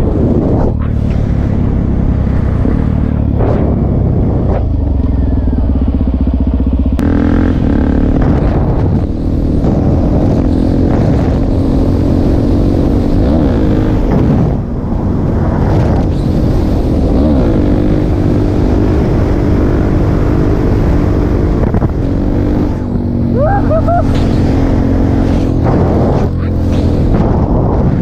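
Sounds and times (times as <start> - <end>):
motorcycle engine revving: 0.0 - 28.0.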